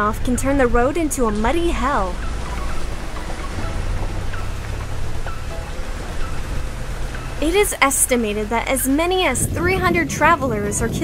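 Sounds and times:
low background music: 0:00.0 - 0:11.0.

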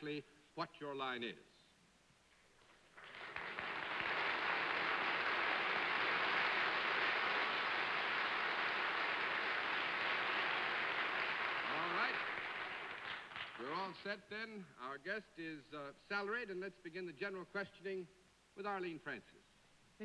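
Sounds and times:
audience applauding: 0:02.7 - 0:13.8.

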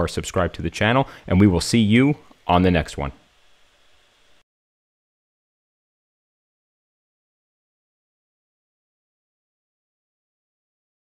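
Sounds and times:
man speaking: 0:00.0 - 0:03.2
faint room hiss: 0:00.0 - 0:04.4.

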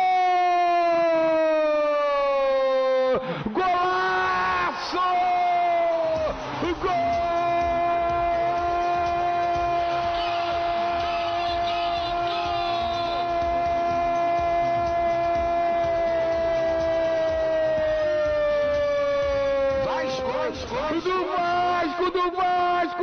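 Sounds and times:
commentator's long goal shout: 0:03.5 - 0:17.2.

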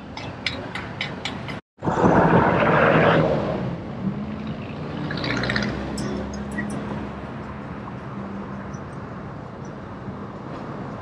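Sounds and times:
engine hum: 0:00.0 - 0:11.0
rush of road traffic: 0:00.0 - 0:11.0.

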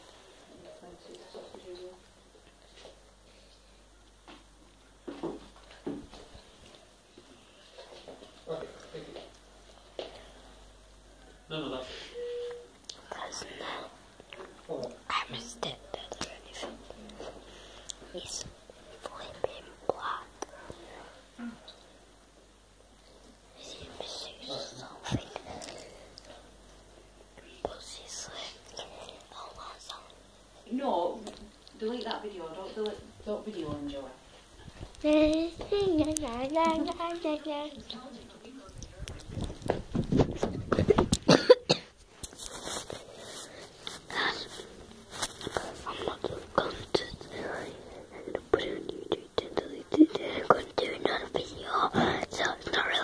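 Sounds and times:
child whispering: 0:12.9 - 0:14.0, 0:15.1 - 0:17.1, 0:18.1 - 0:21.6, 0:23.6 - 0:26.1, 0:27.4 - 0:30.2, 0:44.1 - 0:44.6, 0:45.5 - 0:53.0
child's voiced sound: 0:35.0 - 0:37.8.

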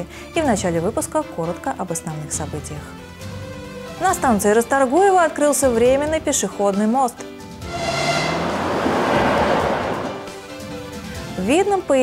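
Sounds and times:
electric train passing at speed: 0:07.6 - 0:11.1.

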